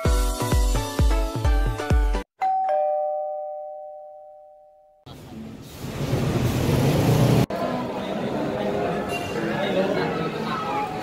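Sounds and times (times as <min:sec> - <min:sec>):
two-tone ding-dong chime: 0:02.4 - 0:05.0
crowd chatter: 0:07.5 - 0:11.0.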